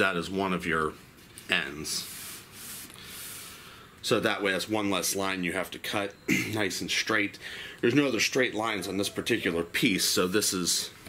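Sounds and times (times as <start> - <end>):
gloved hand rubbing wood: 1.9 - 3.4.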